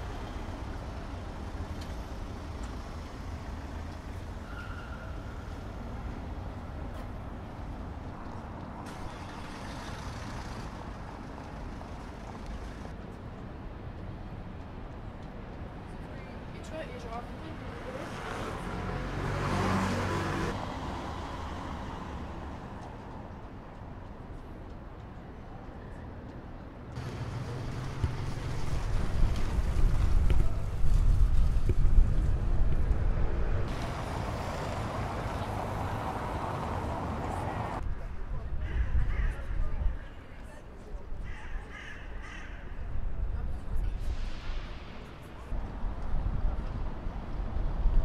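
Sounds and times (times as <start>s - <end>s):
rumble of vehicles: 0.0s - 48.0s
wind buffeting microphone: 27.9s - 33.8s.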